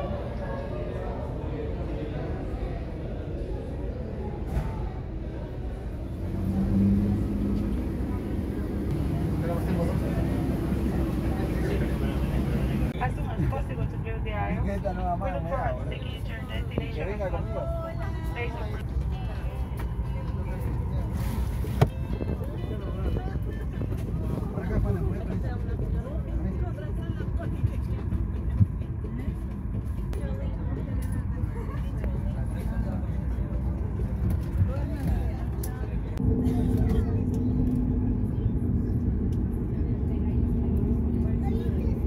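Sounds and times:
cabin air rumble: 0.0 - 42.0
passengers talking: 0.0 - 42.0.

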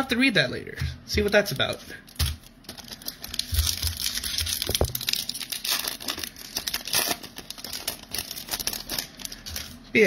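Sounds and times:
foil wrapper crinkling and tearing: 1.2 - 9.9.

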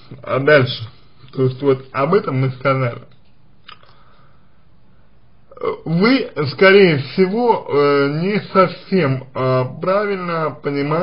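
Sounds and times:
man speaking: 0.0 - 3.2, 5.5 - 11.0
faint steady hiss: 0.0 - 11.0.

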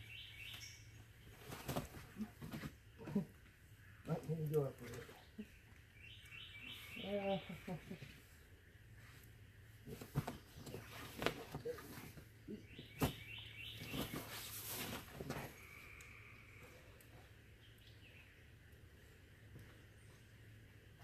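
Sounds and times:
bird chirping: 0.0 - 1.8, 5.1 - 8.1, 12.5 - 14.5.

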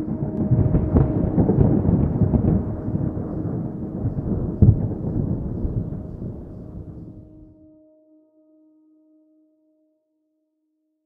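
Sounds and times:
thunder rumbling: 0.0 - 7.6.

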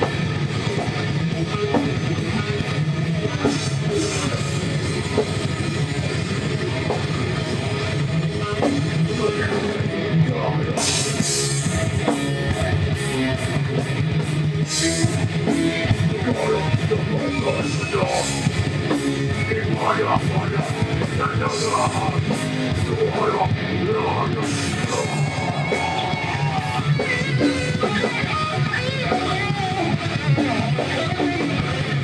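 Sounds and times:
heavy rock band playing: 0.0 - 32.0.

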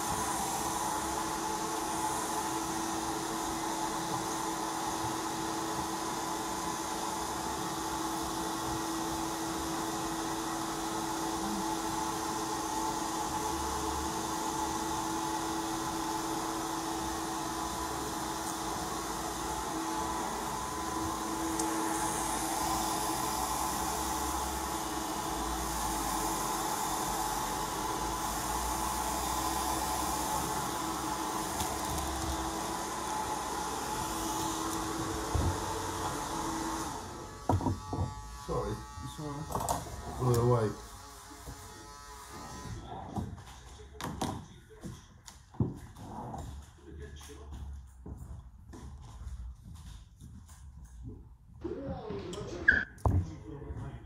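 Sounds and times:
hair dryer blowing: 0.0 - 43.0.

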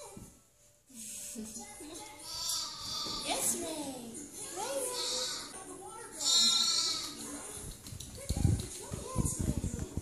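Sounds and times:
lamb bleating: 2.2 - 3.4, 4.8 - 5.5, 6.2 - 7.2.

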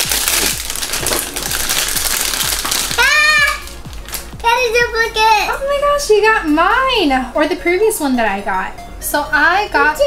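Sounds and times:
foil packets crinkling: 0.0 - 4.5.

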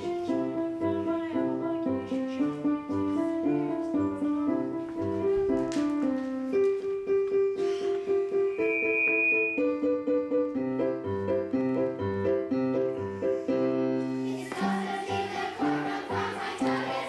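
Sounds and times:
piano chords and melody: 0.0 - 17.0
high thin tone: 8.5 - 9.9.

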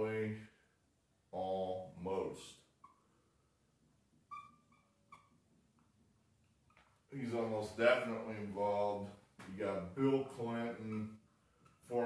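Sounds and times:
marker squeaking on whiteboard: 2.8 - 3.1, 4.3 - 5.5, 10.6 - 11.2.

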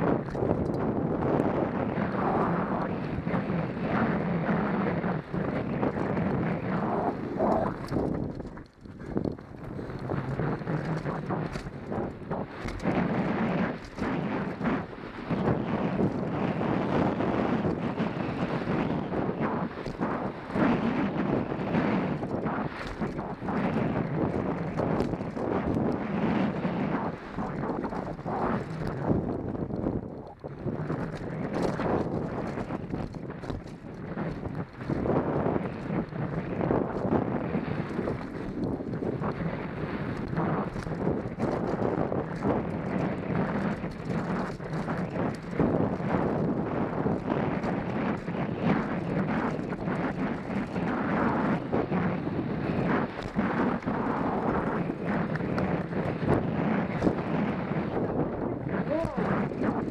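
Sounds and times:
wind on microphone: 0.0 - 59.9
bike clattering and rattling: 0.2 - 1.7, 7.3 - 39.4, 40.0 - 57.3.

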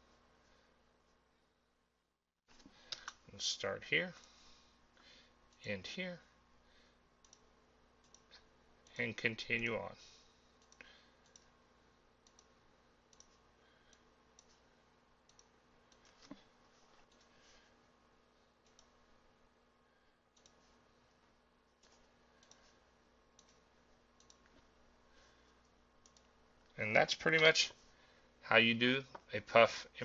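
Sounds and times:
low steady electrical hum: 0.0 - 30.0
faint computer mouse clicks: 2.9 - 3.2, 7.2 - 9.0, 10.6 - 11.5, 12.2 - 12.5, 13.1 - 14.6, 15.3 - 16.4, 18.6 - 18.9, 20.4 - 20.6, 21.8 - 22.8, 23.4 - 23.6, 24.2 - 24.6, 26.0 - 26.3.

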